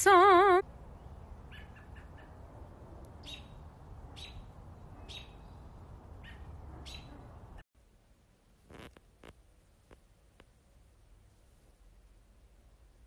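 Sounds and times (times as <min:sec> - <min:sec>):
small bird chirping: 0:00.9 - 0:02.4, 0:03.1 - 0:05.6, 0:06.2 - 0:07.6.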